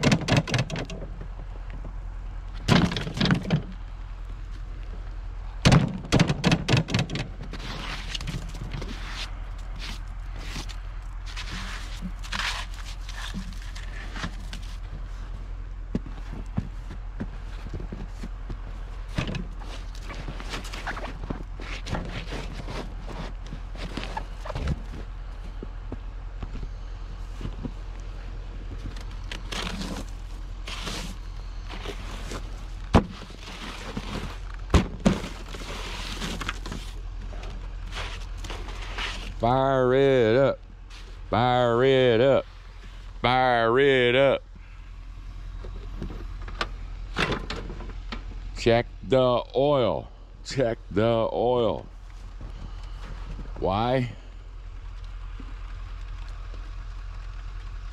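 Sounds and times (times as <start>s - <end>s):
soft scrapes and thunks: 5.7s - 39.4s, 52.1s - 53.6s.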